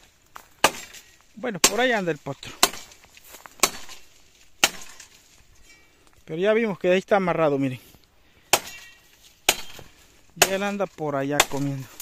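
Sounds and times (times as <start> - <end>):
axe chopping firewood: 0.0 - 5.2, 8.4 - 12.0.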